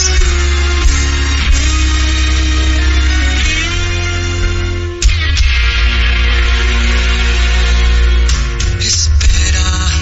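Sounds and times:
instrumental pop ballad: 0.0s - 10.0s.

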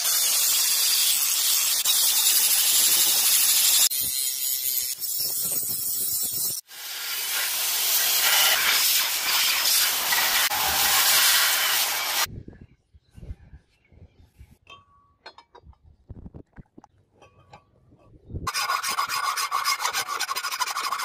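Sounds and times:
angle grinder on metal: 0.0s - 12.3s, 18.5s - 21.0s
belt sander hissing: 6.7s - 12.3s.

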